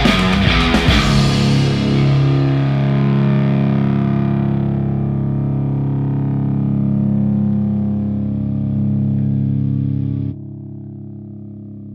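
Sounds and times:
distorted electric guitar chord: 0.0s - 11.9s.

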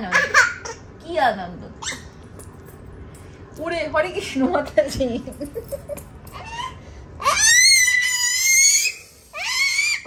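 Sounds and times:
toddler squealing: 6.4s - 10.0s.

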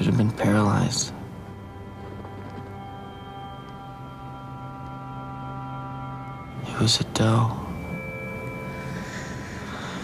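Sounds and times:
soft sustained chord music: 0.0s - 10.0s.

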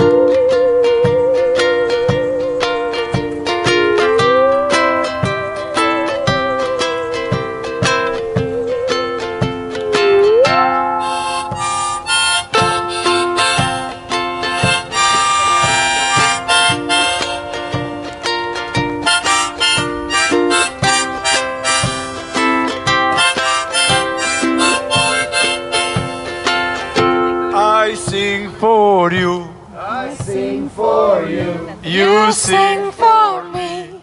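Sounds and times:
harmonica lead: 0.0s - 28.2s
hand drum beat: 0.0s - 34.0s
ukulele strumming: 0.0s - 34.0s.

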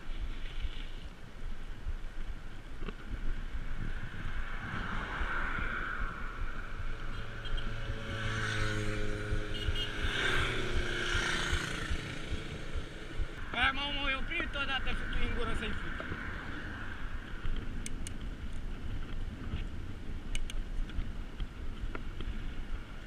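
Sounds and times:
wind buffeting camera: 0.0s - 23.0s
car passing: 3.4s - 17.8s.

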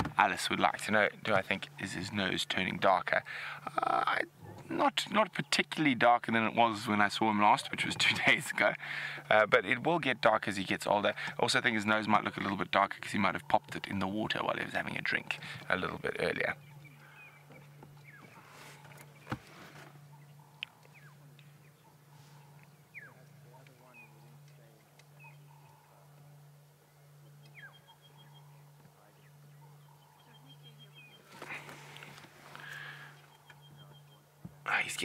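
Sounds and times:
steady low hum: 0.0s - 35.0s
bird chirps: 16.4s - 32.0s, 32.6s - 34.4s.

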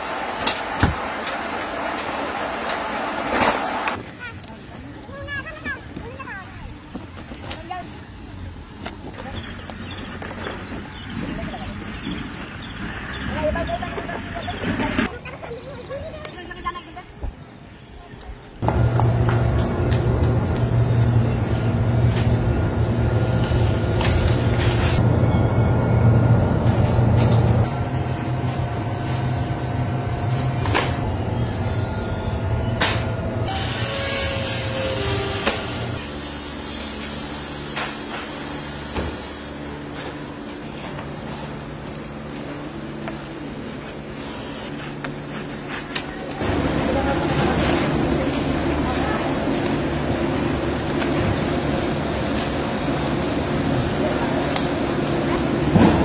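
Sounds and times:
high metallic squeals: 20.6s - 37.0s.

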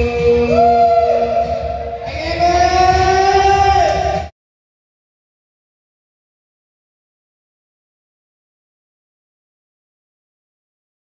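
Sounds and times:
man singing through microphone: 0.0s - 1.5s, 2.1s - 4.2s
backing track with steady beat: 0.0s - 4.3s.

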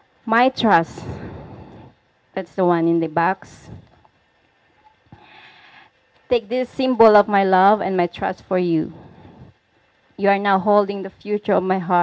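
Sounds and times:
soft breath into microphone: 0.9s - 2.1s, 5.1s - 6.0s, 8.9s - 9.6s.

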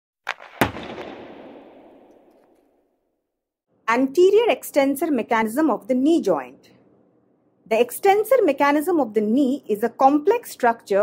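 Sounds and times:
loud echoing impact: 0.3s - 2.7s.

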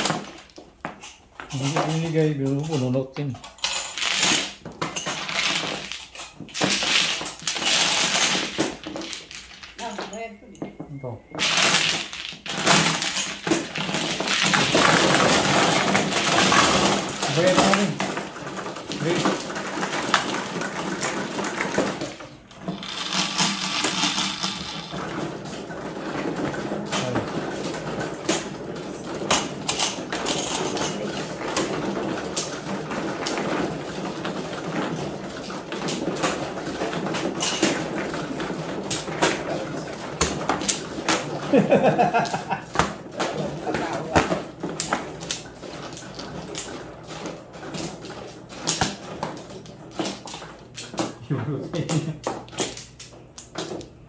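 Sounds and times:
mahjong tiles clattering and clicking: 0.0s - 9.9s, 11.4s - 51.1s.

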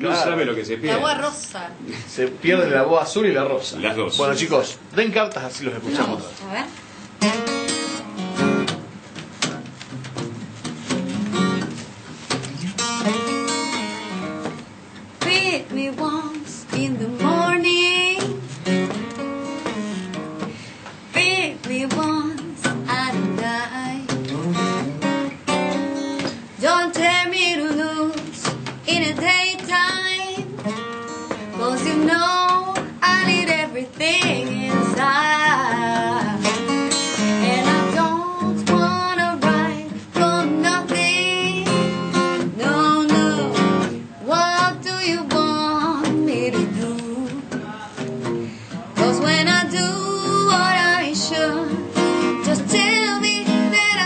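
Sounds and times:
acoustic guitar blues: 0.0s - 4.8s, 5.9s - 54.0s
woman singing: 15.2s - 18.5s, 21.1s - 24.4s, 26.2s - 47.6s, 49.0s - 54.0s.

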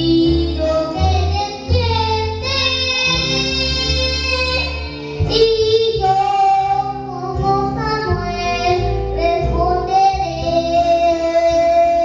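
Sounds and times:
boy singing through a microphone: 0.0s - 12.0s
instrumental accompaniment: 0.0s - 12.0s.

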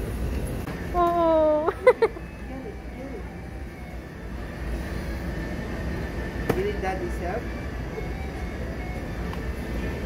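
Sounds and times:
supermarket background rumble: 0.0s - 10.0s.

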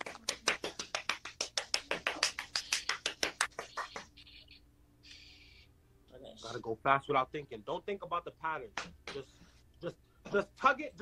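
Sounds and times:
rapid regular taps: 0.0s - 4.2s
short hissing sounds: 5.0s - 5.8s.

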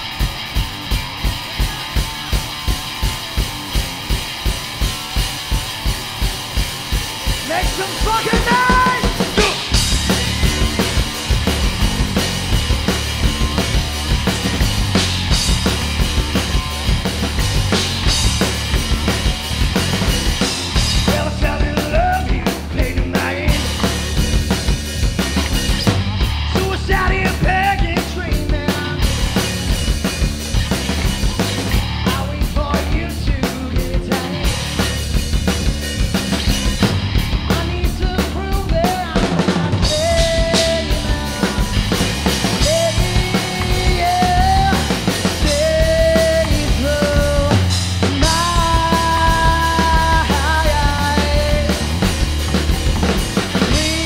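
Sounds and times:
bass guitar: 0.0s - 54.0s
electric guitar: 0.0s - 54.0s
bass drum and snare hits: 2.3s - 33.1s, 34.4s - 54.0s.

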